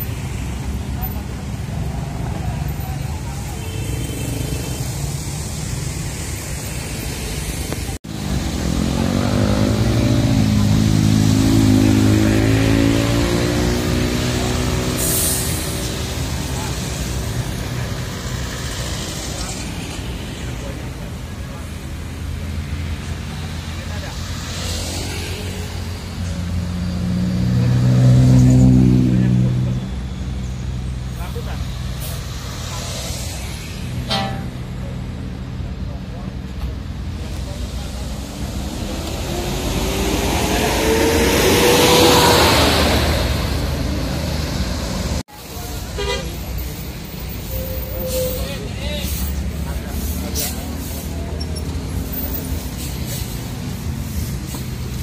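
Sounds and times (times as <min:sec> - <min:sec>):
diesel engine revving: 0:08.0 - 0:19.5, 0:22.0 - 0:45.3.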